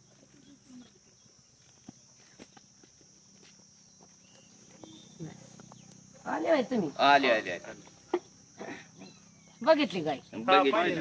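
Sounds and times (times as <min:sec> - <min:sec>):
footsteps on dry dirt: 0:00.0 - 0:06.2
high insect drone: 0:00.0 - 0:11.0.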